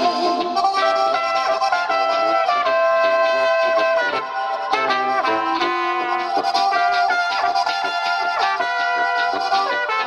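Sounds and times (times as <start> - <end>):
accordion guitar and tuba accompaniment: 0.0 - 10.0
trumpet and clarinet melody: 0.0 - 10.0.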